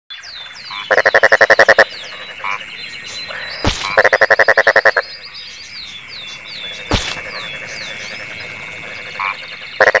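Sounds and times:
frog croaking: 0:00.1 - 0:10.0.

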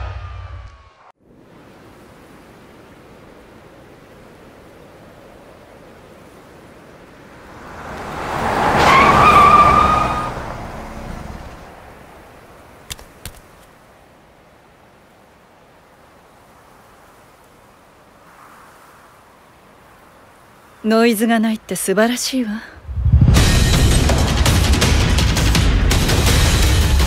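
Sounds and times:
wind-like outdoor hiss: 0:01.2 - 0:08.8, 0:10.3 - 0:24.8
vehicle passing: 0:07.2 - 0:12.3, 0:22.8 - 0:25.2.

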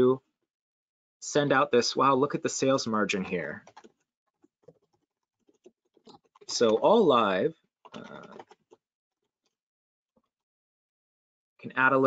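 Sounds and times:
faint keyboard typing: 0:03.2 - 0:07.2, 0:07.9 - 0:08.8.

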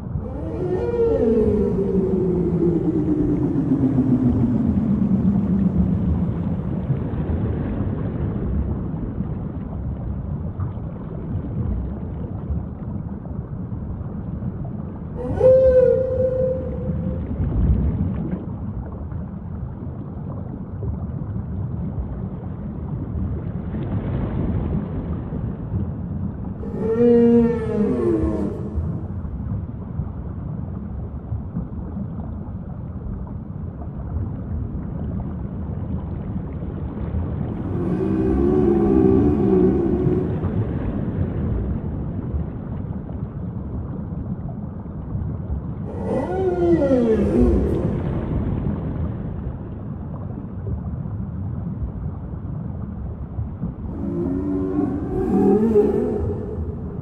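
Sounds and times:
whale calls: 0:00.0 - 0:07.0, 0:15.0 - 0:17.8, 0:26.5 - 0:29.6, 0:37.5 - 0:41.6, 0:45.8 - 0:49.8, 0:53.7 - 0:57.0.

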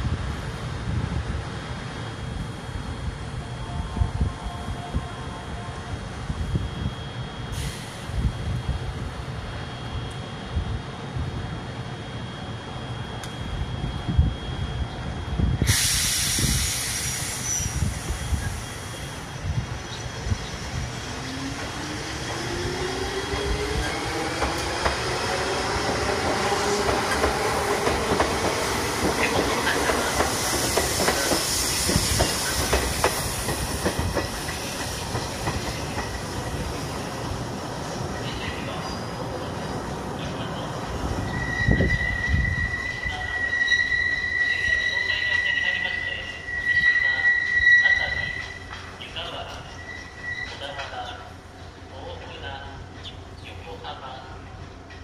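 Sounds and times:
air hiss: 0:07.5 - 0:08.3, 0:15.6 - 0:19.3, 0:30.3 - 0:33.8
train wheels clacking: 0:23.2 - 0:37.0.

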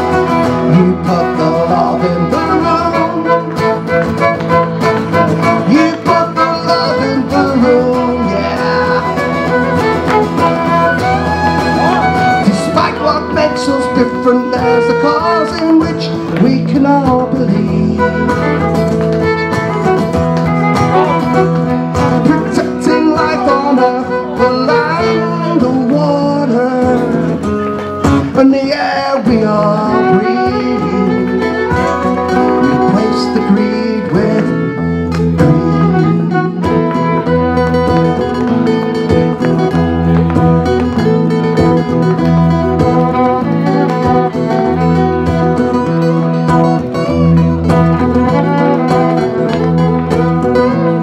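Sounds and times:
acoustic guitars strumming: 0:00.0 - 0:51.0
bending lead guitar melody: 0:00.0 - 0:51.0.

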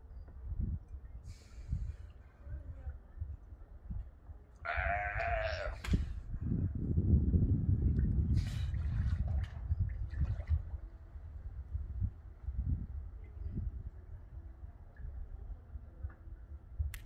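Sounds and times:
sea lion bleating call: 0:04.7 - 0:05.8.

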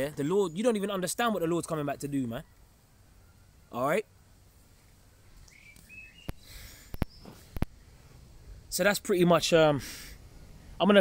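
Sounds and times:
bird chirping: 0:00.0 - 0:08.2
faint background noise: 0:00.0 - 0:11.0.

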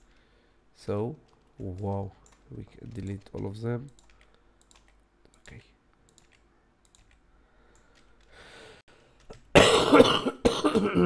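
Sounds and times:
man coughing: 0:09.5 - 0:11.0.

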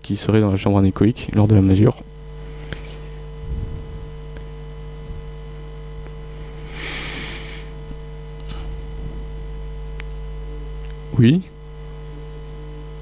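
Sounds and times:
electrical mains hum: 0:00.0 - 0:13.0
breath into microphone: 0:06.6 - 0:07.7.

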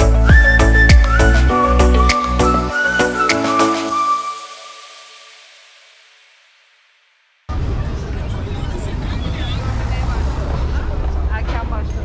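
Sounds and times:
passers-by talking: 0:07.5 - 0:12.0
road traffic rumble: 0:07.5 - 0:12.0.

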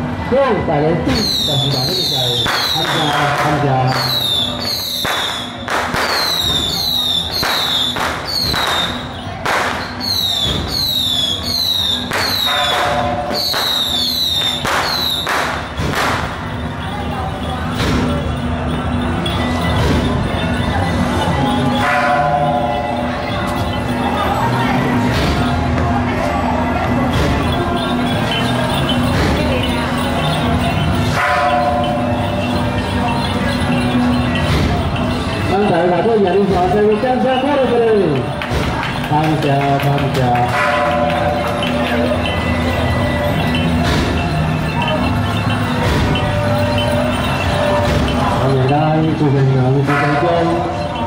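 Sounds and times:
firecrackers banging: 0:01.0 - 0:51.0
short high whistles: 0:09.8 - 0:12.8
metal bell struck: 0:12.3 - 0:14.7, 0:15.6 - 0:25.6, 0:26.8 - 0:51.0.

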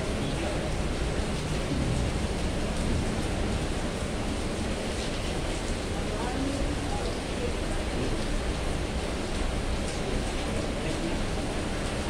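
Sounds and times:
heavy rain falling: 0:00.0 - 0:12.0.

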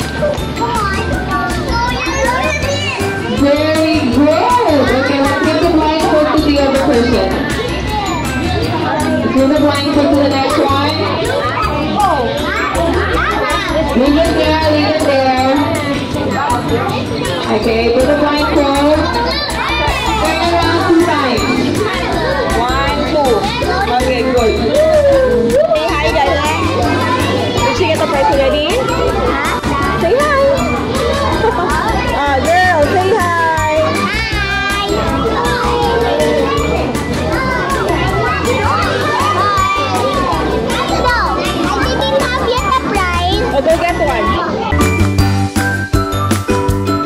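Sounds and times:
children calling out and chattering: 0:00.0 - 0:47.0
party music: 0:00.0 - 0:47.0.

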